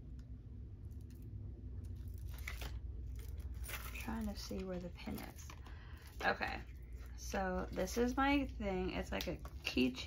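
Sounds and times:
low steady hum: 0:00.0 - 0:10.0
packaging crinkling and scraping: 0:01.8 - 0:08.5.

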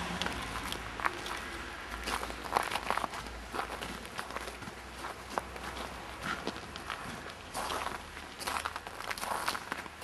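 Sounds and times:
footsteps crunching in snow: 0:00.3 - 0:10.0.

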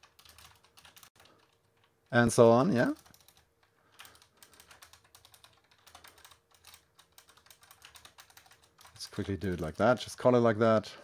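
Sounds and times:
computer keyboard typing: 0:00.0 - 0:10.0.

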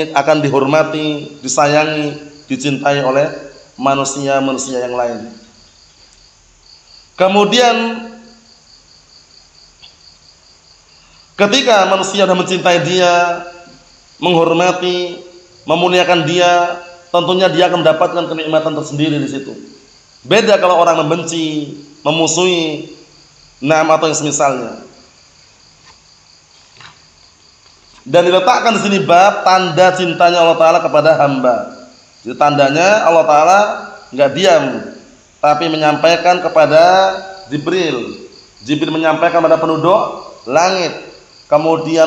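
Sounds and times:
man speaking: 0:00.0 - 0:05.5, 0:07.2 - 0:08.2, 0:11.4 - 0:13.6, 0:14.2 - 0:19.7, 0:20.3 - 0:23.0, 0:23.6 - 0:24.9, 0:28.0 - 0:42.0
insects chirring: 0:00.0 - 0:42.0.

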